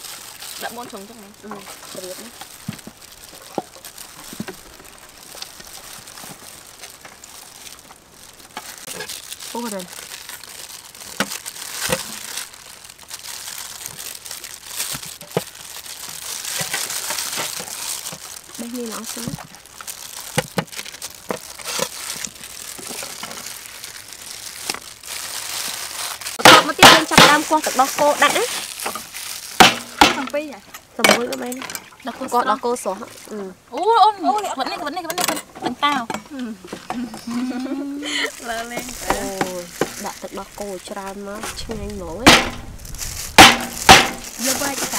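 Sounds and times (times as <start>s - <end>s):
steady high hiss: 0.0s - 9.9s
fruit skin crinkling and rustling: 0.0s - 44.9s
people talking: 0.6s - 2.3s, 9.5s - 9.9s, 18.6s - 19.4s, 26.4s - 28.6s, 30.1s - 42.5s, 44.4s - 44.9s.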